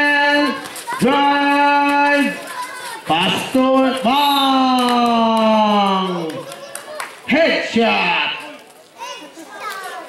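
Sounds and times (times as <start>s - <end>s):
young voices shouting: 0.0s - 10.0s.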